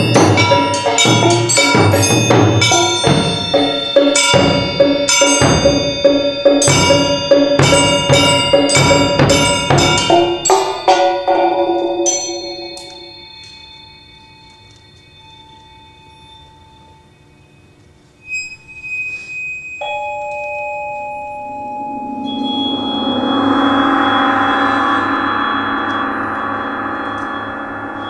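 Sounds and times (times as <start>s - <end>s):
percussion ensemble ringing music: 0.0s - 28.0s.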